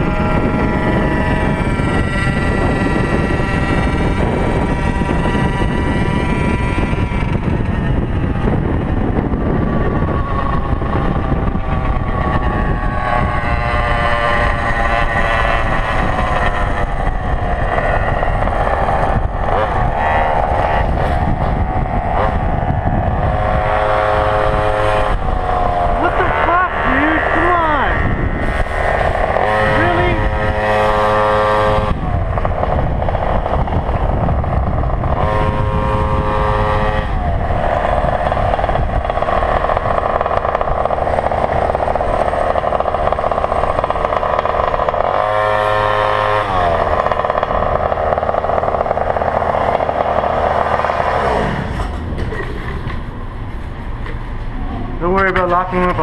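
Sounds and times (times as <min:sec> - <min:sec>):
small two-stroke scooter engines: 0:00.0 - 0:56.0
steady rushing noise: 0:00.0 - 0:56.0.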